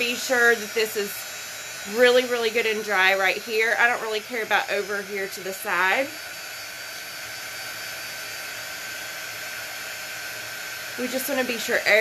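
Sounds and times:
blow dryer running: 0.0 - 12.0.

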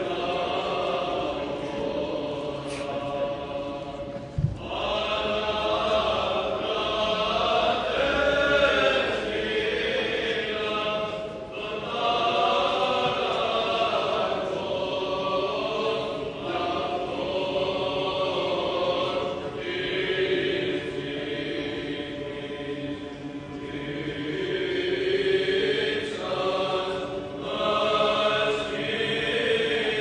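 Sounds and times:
choir chanting long held notes: 0.0 - 30.0.

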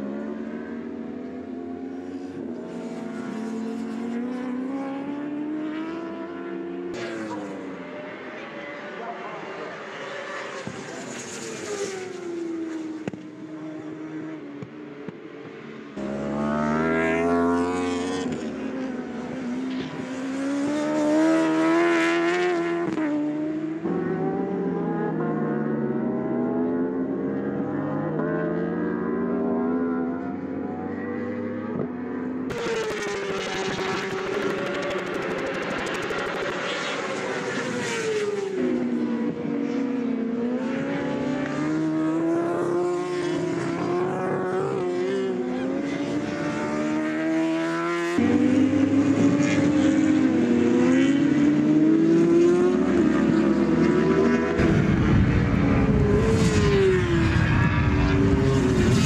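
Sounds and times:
superbike engines at high revs: 32.5 - 39.0.

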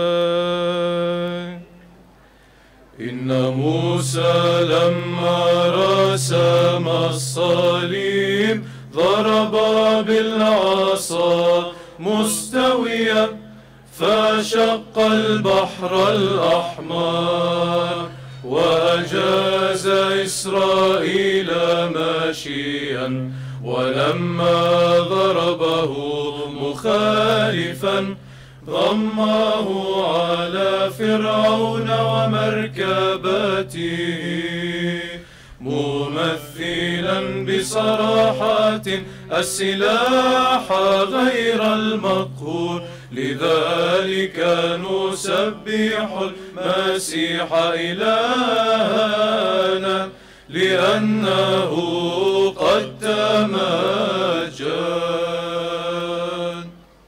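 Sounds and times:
male choir chanting a hymn: 0.0 - 1.7, 3.0 - 56.9
low vocal drone: 2.9 - 57.0.

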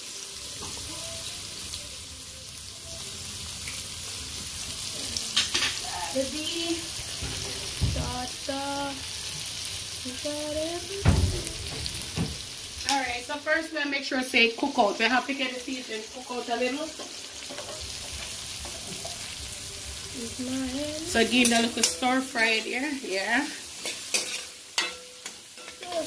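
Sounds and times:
vegetables sizzling in oil: 0.0 - 26.0.

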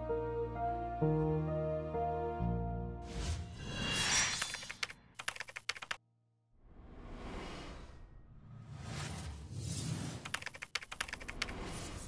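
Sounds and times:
keyboard typing clicks: 4.6 - 6.0, 10.2 - 11.6.

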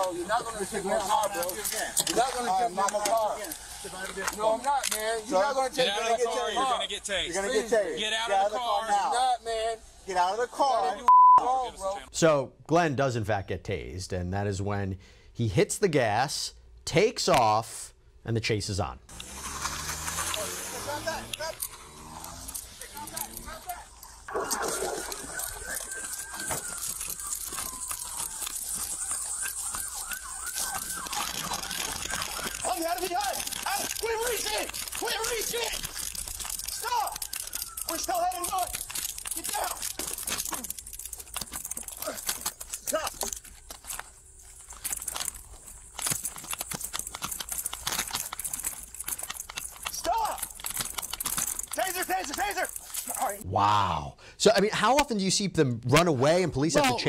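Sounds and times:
officers' voices: 0.0 - 12.2, 13.0 - 44.6, 49.7 - 50.6, 51.4 - 57.0
siren wailing: 24.3 - 40.4.

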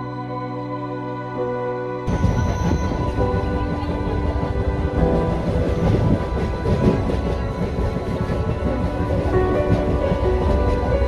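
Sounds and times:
calm background music: 0.0 - 11.0
train wheels rumbling: 2.1 - 11.0.

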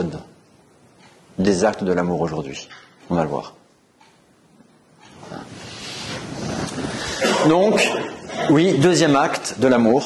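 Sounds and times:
cloth rubbing on microphone: 5.2 - 7.2.

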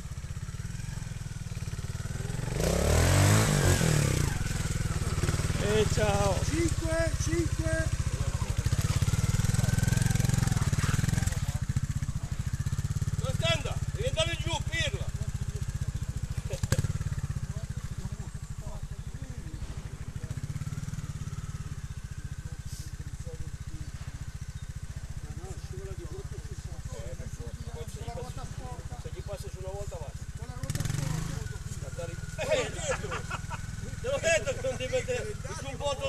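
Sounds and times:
motorcycle engine running: 0.0 - 36.0.

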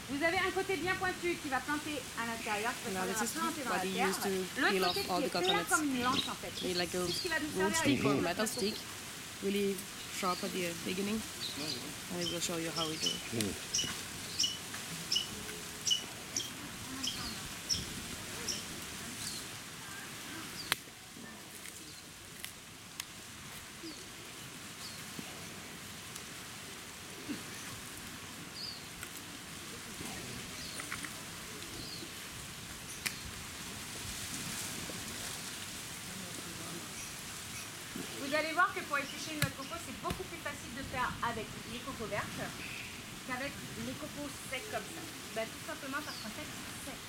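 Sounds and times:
voices: 0.0 - 21.9, 37.8 - 47.0
outdoor ambience: 0.0 - 47.0
small bird chirping: 9.9 - 19.5.

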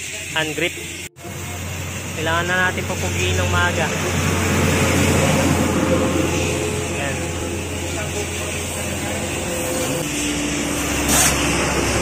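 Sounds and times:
vehicle passing by: 1.3 - 12.0.

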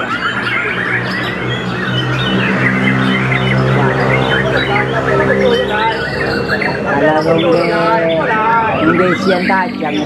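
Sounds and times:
songbirds chirping and trilling: 0.0 - 10.0
steady low hum: 0.0 - 10.0.

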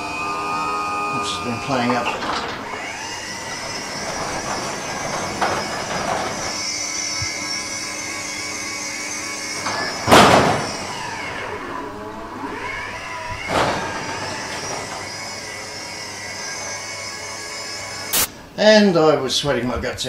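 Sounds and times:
garage door opener chain rattling: 1.1 - 18.0.

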